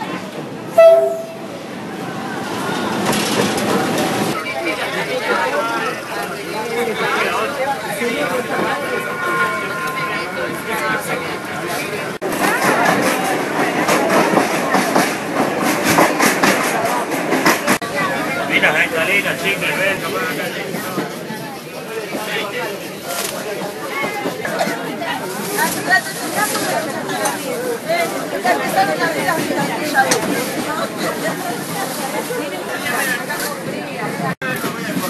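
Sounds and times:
passengers' voices: 0:00.0 - 0:35.0
train rumbling and clattering past: 0:00.0 - 0:35.0
locomotive horn blast: 0:00.7 - 0:01.5.

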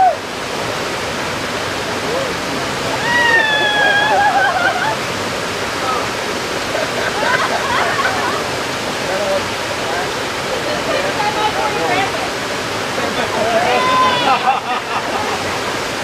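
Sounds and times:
waterfall rushing over rocks: 0:00.0 - 0:16.0
faint voices: 0:01.8 - 0:15.8.

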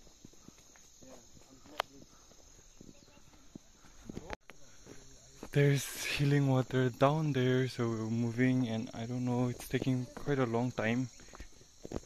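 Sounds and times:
insects buzzing: 0:00.0 - 0:12.0.

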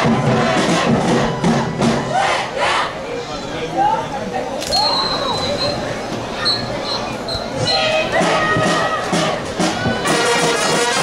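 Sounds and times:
marching band playing: 0:00.0 - 0:03.2, 0:05.1 - 0:11.0
crowd shouting and cheering: 0:00.0 - 0:03.8, 0:04.6 - 0:11.0.

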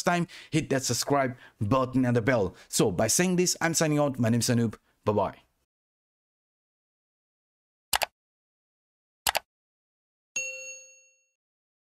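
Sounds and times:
notification bell ding: 0:10.4 - 0:11.4.

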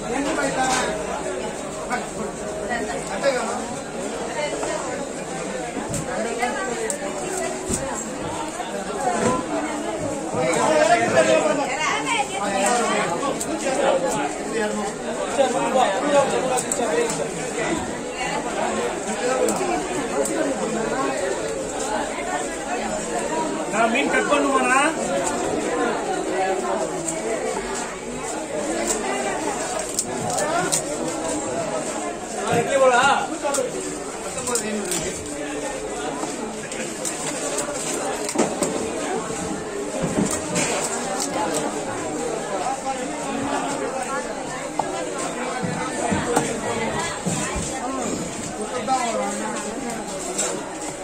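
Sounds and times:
market chatter: 0:00.0 - 0:51.0.

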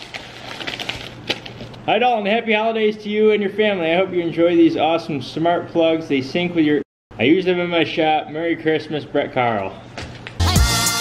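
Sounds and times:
plastic mailer crinkling: 0:00.0 - 0:01.9.

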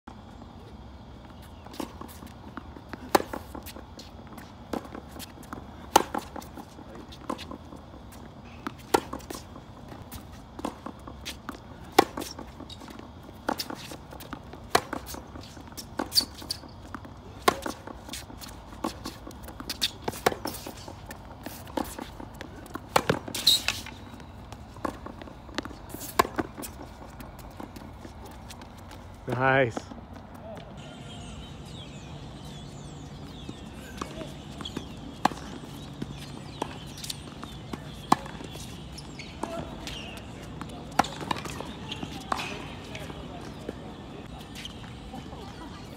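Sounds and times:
shoes shuffling on hard court: 0:00.2 - 0:45.9
tennis ball bouncing: 0:01.4 - 0:45.6
racket striking ball: 0:04.7 - 0:06.4, 0:13.4 - 0:18.0, 0:18.8 - 0:24.0, 0:33.2 - 0:43.7
tennis ball struck by racket: 0:22.8 - 0:23.9, 0:33.4 - 0:38.8.

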